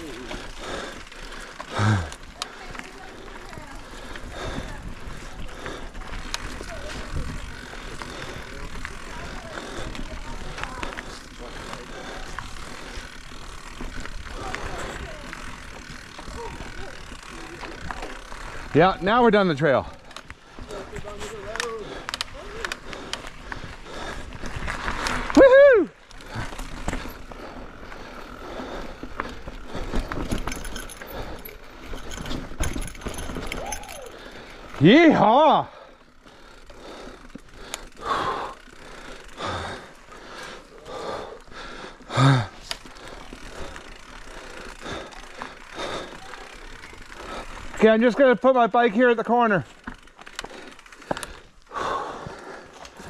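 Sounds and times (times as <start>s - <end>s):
bike chain and frame rattling: 0.0s - 53.0s
bike tyres on dirt: 0.0s - 53.0s
rider whooping: 16.1s - 17.7s, 25.2s - 26.6s, 33.0s - 35.6s.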